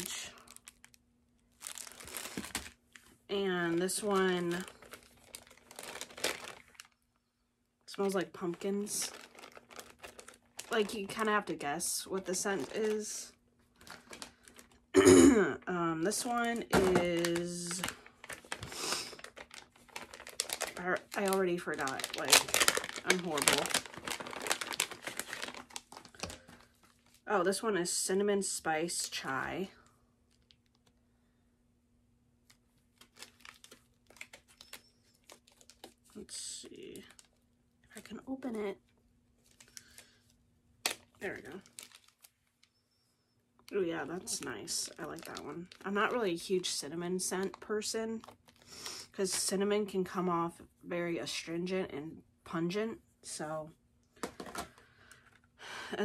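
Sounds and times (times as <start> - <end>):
plastic wrapper crinkling: 0.0 - 7.1, 7.9 - 14.9, 16.0 - 27.3, 30.2 - 31.0, 32.4 - 42.8, 43.6 - 49.5
packages clicking and rustling: 0.4 - 3.2, 3.8 - 7.0, 8.0 - 11.4, 12.0 - 14.8, 16.4 - 27.2, 32.5 - 36.0, 40.9 - 42.7, 54.2 - 55.5.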